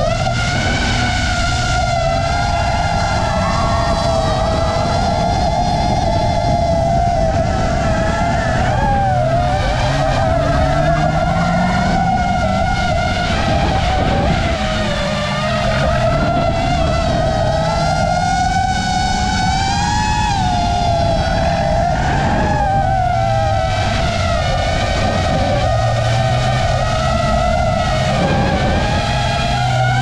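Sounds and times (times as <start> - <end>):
car engine running: 0.0 - 30.0
drone motors whining: 0.0 - 30.0.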